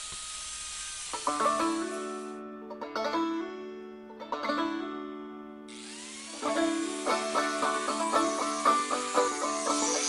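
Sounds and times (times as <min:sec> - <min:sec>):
steady hiss: 0:00.0 - 0:02.3, 0:05.8 - 0:10.0
banjo music: 0:01.2 - 0:10.0.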